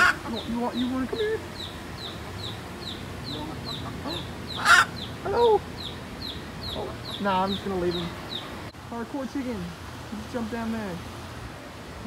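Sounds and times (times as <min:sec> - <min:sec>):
hen clucking softly: 0:01.1 - 0:05.9.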